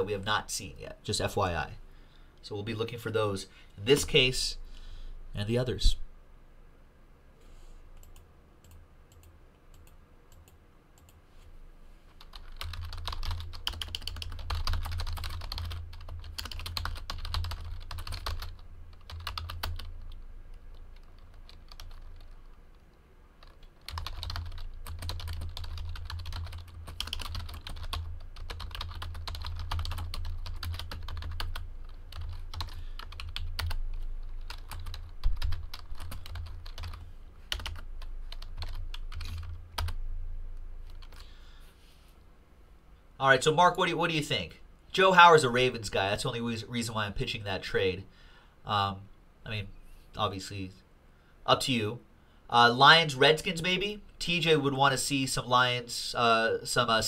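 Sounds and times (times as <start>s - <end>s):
typing on computer keyboard: 12.2s - 20.0s, 21.0s - 22.4s, 23.4s - 33.8s, 34.4s - 40.0s, 40.9s - 41.2s.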